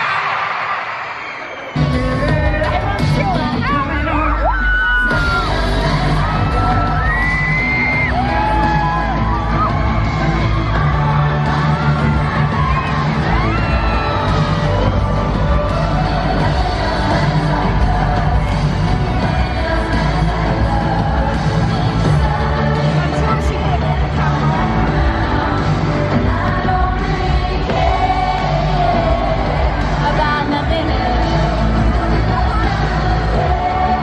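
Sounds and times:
crowd yelling along: 0.0s - 26.4s
girl group singing pop music: 1.8s - 34.0s.

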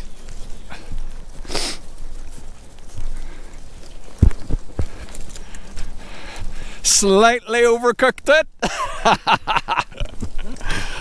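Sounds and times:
rustling: 0.0s - 6.9s
footsteps on grass: 0.0s - 9.1s
short hiss: 1.4s - 1.8s.

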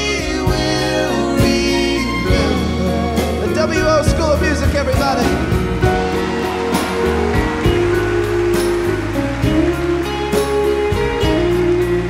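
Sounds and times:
country band with orchestra: 0.0s - 12.0s.

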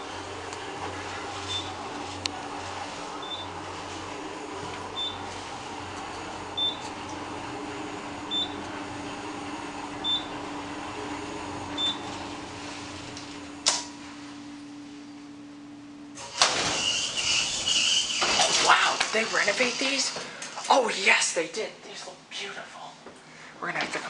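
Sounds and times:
elevator hum: 0.0s - 21.2s
elevator doors opening rush: 16.2s - 20.8s.

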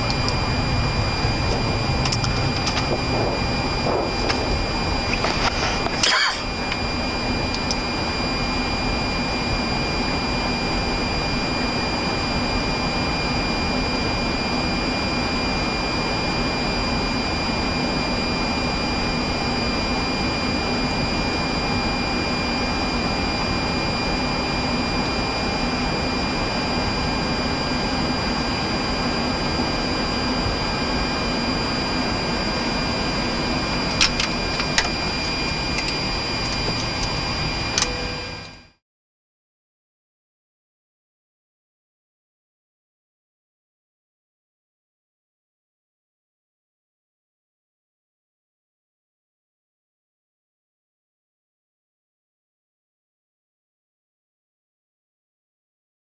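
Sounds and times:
faint high whines: 0.0s - 38.8s
jet engines idling: 0.0s - 38.8s.

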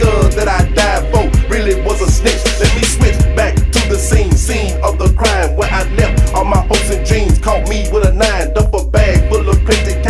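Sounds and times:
rapping over a hip hop beat: 0.0s - 10.0s.

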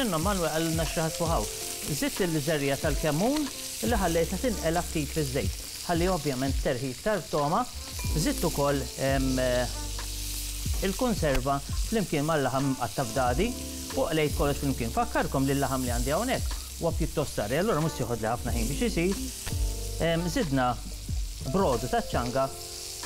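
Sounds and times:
food sizzling in oil: 0.0s - 23.0s.

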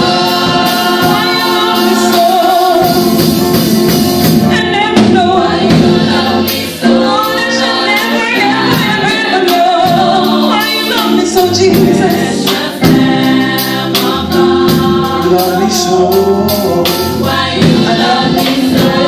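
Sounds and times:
drum kit strikes: 0.0s - 19.0s
gospel choir singing: 0.0s - 19.0s.

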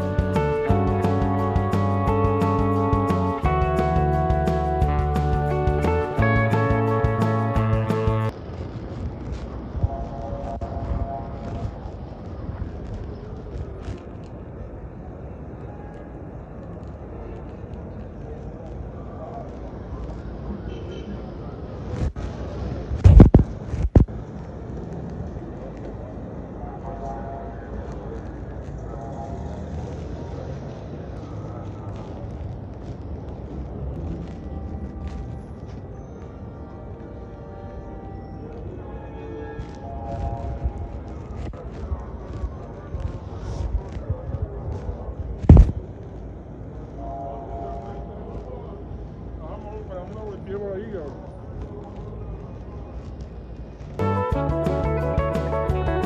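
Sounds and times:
music: 0.0s - 8.3s, 54.0s - 56.0s
traffic hum: 0.0s - 56.0s.

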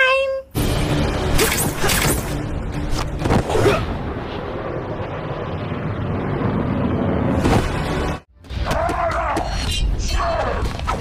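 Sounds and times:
low rumbling rushing noise: 2.4s - 8.3s.

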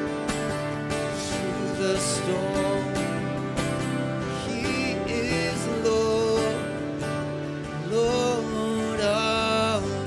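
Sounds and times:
acoustic guitar strumming: 0.0s - 10.0s
man singing: 1.0s - 10.0s.

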